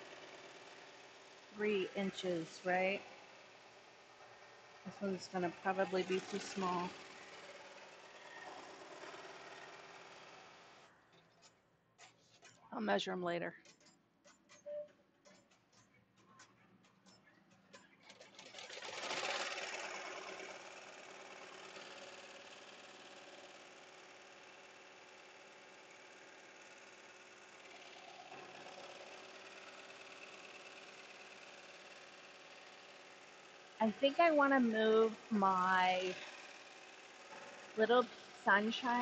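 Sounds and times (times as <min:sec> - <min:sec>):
embroidery machine stitching: 0:00.0 - 0:10.9, 0:13.6 - 0:39.0.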